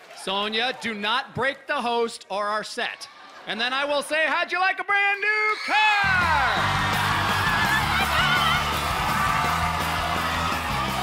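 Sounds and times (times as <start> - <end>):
studio audience cheering: 5.1 - 11.0
woman screaming with excitement: 5.5 - 11.0
game show fanfare music: 6.0 - 11.0.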